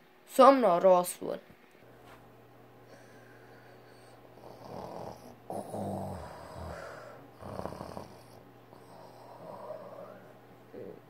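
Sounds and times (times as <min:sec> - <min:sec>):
boy snoring: 0:04.4 - 0:11.0.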